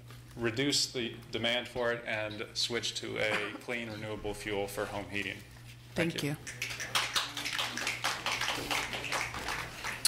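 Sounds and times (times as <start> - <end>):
audience applauding: 6.5 - 10.0.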